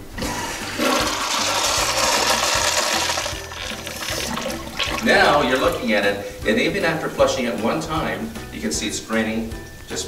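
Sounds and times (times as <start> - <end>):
urinal flushing: 0.0 - 5.8.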